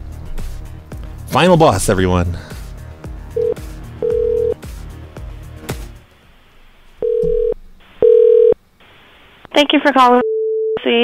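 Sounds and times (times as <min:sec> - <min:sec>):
music with a beat: 0:00.0 - 0:01.3, 0:02.5 - 0:06.0
phone ringback tone beeps: 0:03.4 - 0:04.6, 0:07.0 - 0:08.6, 0:10.2 - 0:10.8.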